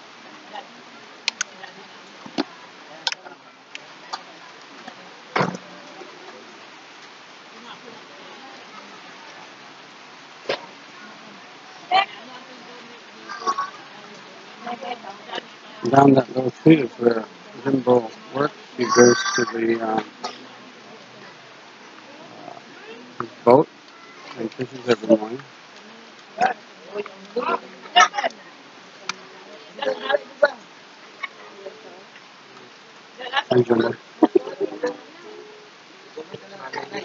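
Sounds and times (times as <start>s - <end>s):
faint background noise: 0.0s - 37.0s
small animal calls: 13.2s - 13.9s, 18.8s - 19.6s.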